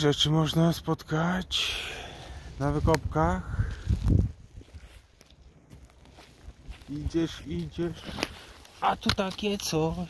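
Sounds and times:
footsteps on dry forest floor: 1.8 - 10.0.

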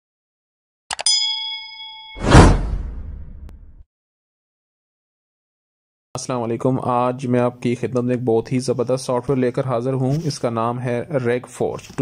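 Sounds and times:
notification bell ding: 0.9 - 2.5
burst sound effect: 2.2 - 3.8.

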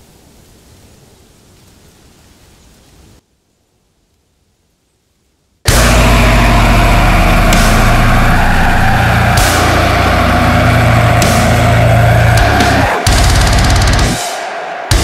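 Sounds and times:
cymbal crashes: 5.7 - 15.0
heavy metal song: 5.7 - 15.0.

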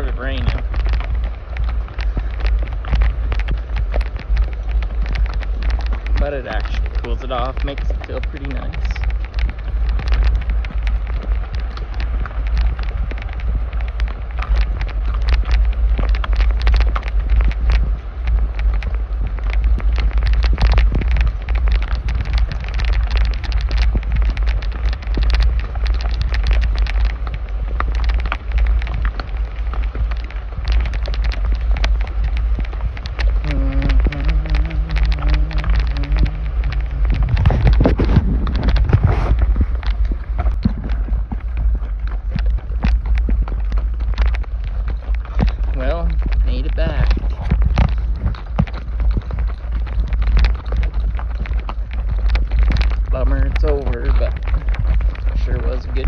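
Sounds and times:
low steady tone: 0.0 - 54.4
horse hooves on trail: 0.0 - 56.0
wind on microphone: 0.0 - 56.0.

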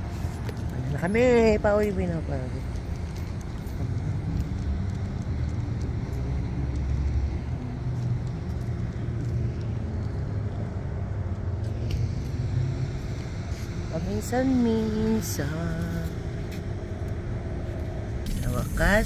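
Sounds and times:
low rumble of cars: 0.0 - 19.0.

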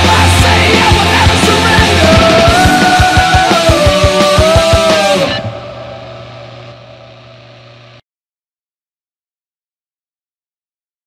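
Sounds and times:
electric guitar chord ringing: 0.2 - 8.0
steady low tone: 0.2 - 8.0.

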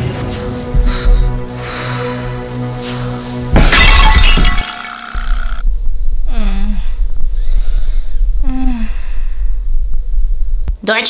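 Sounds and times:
dramatic music: 0.0 - 5.6
glass shattering crash: 3.6 - 5.6
low steady rumble: 5.6 - 10.8
girl moaning: 6.2 - 7.0, 8.4 - 9.3.

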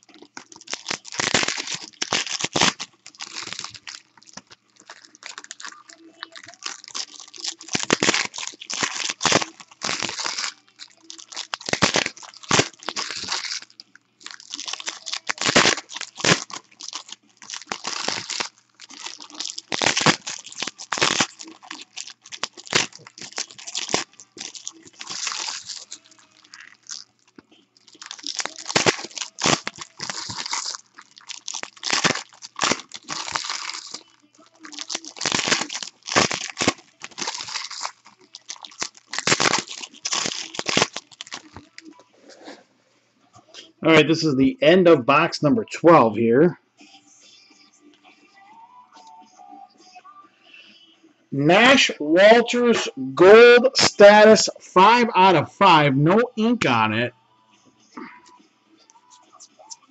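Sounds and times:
foil wrappers crinkling and tearing: 0.0 - 42.0.

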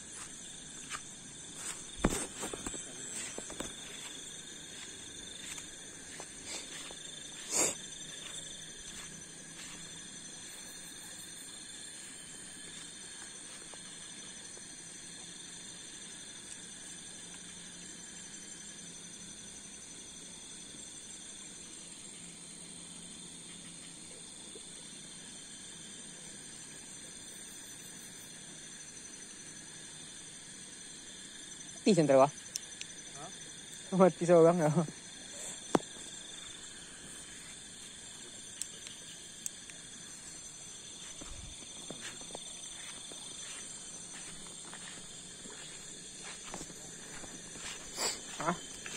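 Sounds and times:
crickets chirring: 0.0 - 48.9.

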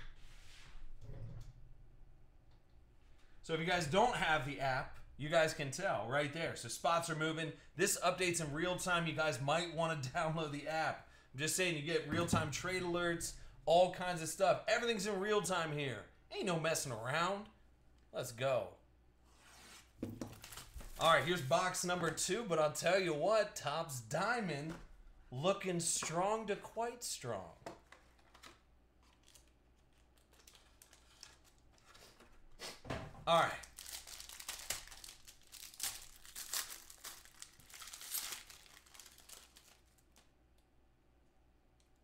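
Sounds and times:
plastic wrap crinkling: 20.1 - 21.5, 28.1 - 32.3, 33.3 - 40.6
plastic wrap tearing: 29.0 - 32.2, 33.4 - 40.3.

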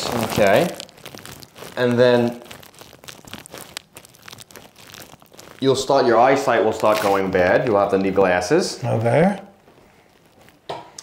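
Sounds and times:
rustling and crinkling on table: 0.0 - 11.0.

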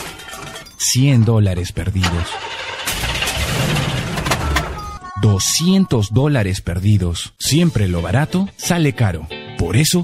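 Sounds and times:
car engine cranking roughly: 2.0 - 5.0.

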